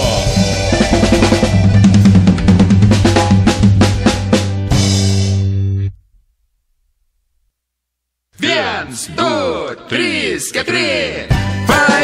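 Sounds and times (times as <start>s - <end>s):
band playing lively song: 0.0s - 5.8s, 11.2s - 12.0s
snare and bass drum hits: 1.2s - 5.4s.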